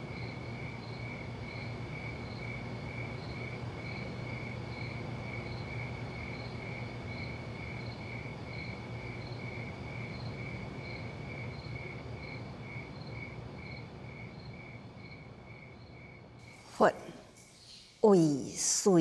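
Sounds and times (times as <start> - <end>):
insects chirping: 0.0 - 19.0
low night hum: 0.0 - 19.0.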